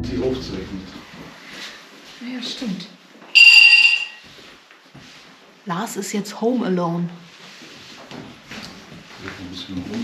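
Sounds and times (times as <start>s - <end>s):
high-pitched electronic tone: 3.4s - 4.2s.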